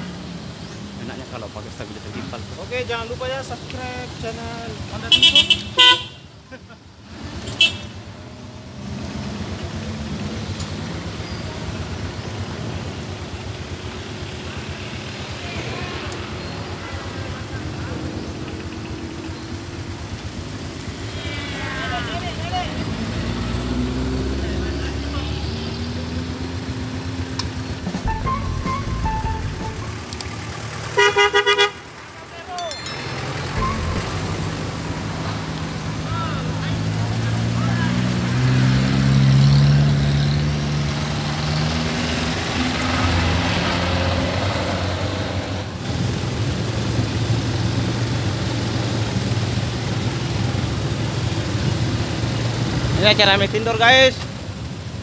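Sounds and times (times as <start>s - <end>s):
vehicle engines passing: 0.0s - 55.0s
car horn honking: 5.1s - 6.3s, 7.5s - 8.0s, 30.9s - 32.0s, 32.7s - 34.7s.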